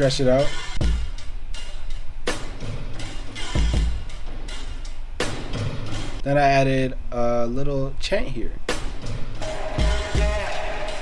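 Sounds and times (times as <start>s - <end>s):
hi-hat loop ticking: 0.0s - 6.3s, 8.7s - 11.0s
kick drum: 0.8s - 1.1s.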